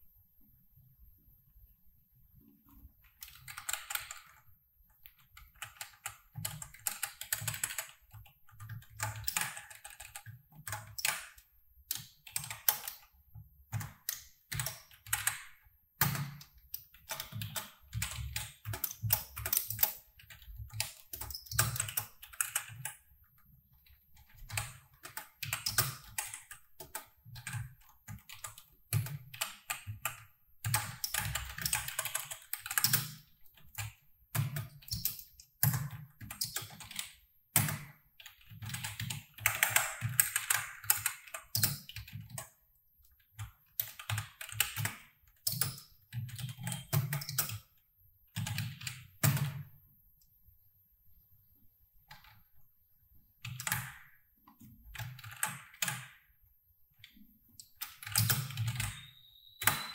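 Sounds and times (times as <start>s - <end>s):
typing on computer keyboard: 3.0s - 4.4s, 5.0s - 47.8s, 48.4s - 49.6s, 53.4s - 56.3s, 57.0s - 59.9s.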